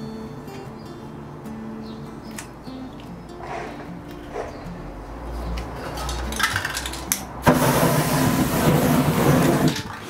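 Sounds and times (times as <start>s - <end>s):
spray can handling clicks: 6.0s - 7.6s
spray paint can hissing: 7.4s - 9.9s.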